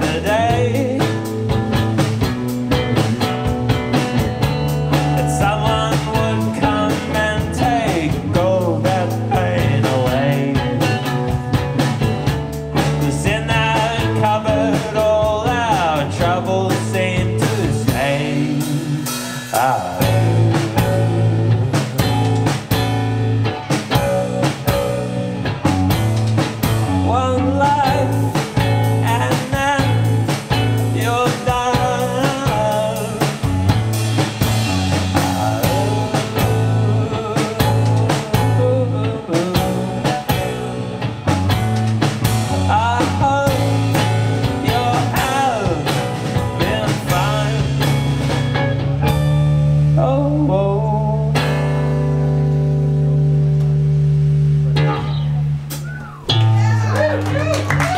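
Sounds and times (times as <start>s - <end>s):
drum kit beating: 0.0s - 57.9s
electric bass pulsing: 0.0s - 57.9s.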